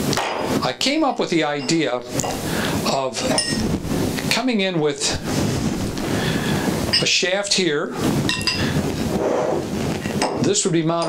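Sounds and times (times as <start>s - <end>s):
ringing metal clink: 3.3s - 3.6s.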